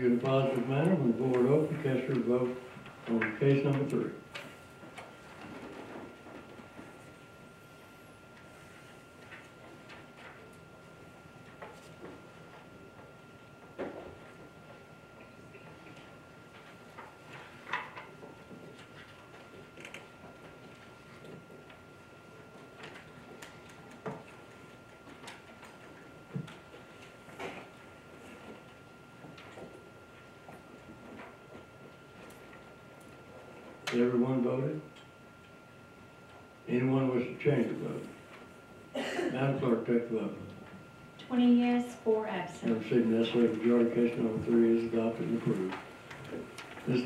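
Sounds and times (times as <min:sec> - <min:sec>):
faint high hum: 0:00.0 - 0:47.0.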